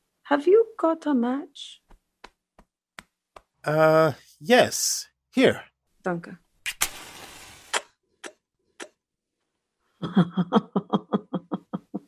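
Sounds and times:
match flaring with a hiss: 6.6s - 7.9s.

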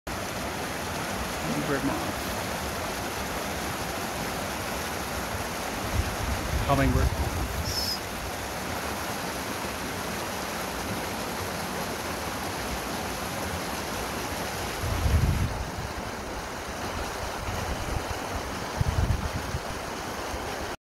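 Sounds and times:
wind buffeting microphone: 5.8s - 7.8s, 14.8s - 16.0s, 17.0s - 19.8s.

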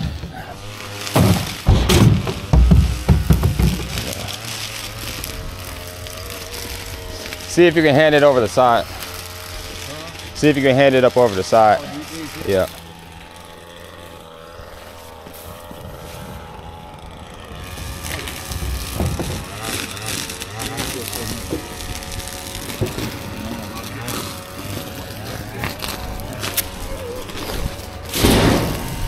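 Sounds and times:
brush and sticks rustling: 0.0s - 28.2s
muffled voices: 18.0s - 28.1s.

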